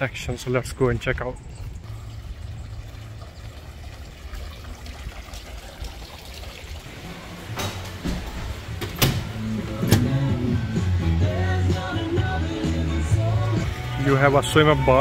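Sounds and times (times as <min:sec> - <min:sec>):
glass doors clicking open: 0:07.3 - 0:10.3.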